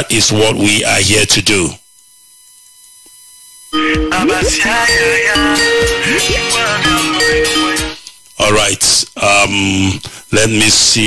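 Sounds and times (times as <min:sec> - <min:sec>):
music with sliding notes: 0:03.8 - 0:08.0
high-pitched electronic whine: 0:03.8 - 0:08.7.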